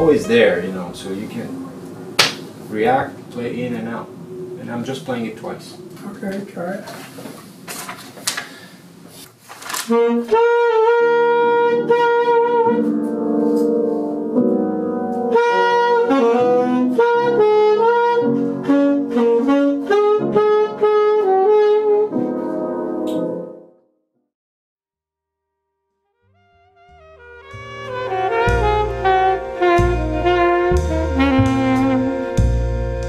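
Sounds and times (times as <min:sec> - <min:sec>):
alto saxophone melody: 0:00.0 - 0:01.9, 0:09.9 - 0:23.5, 0:26.2 - 0:33.0
piano chords: 0:00.0 - 0:06.2, 0:10.3 - 0:23.8, 0:26.6 - 0:33.0.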